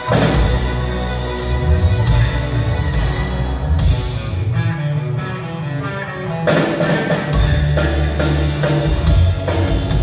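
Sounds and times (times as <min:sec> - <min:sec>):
drums and cymbals: 0:00.0 - 0:04.6, 0:06.4 - 0:10.0
electric guitar: 0:00.0 - 0:10.0
rock band playing live: 0:00.0 - 0:10.0.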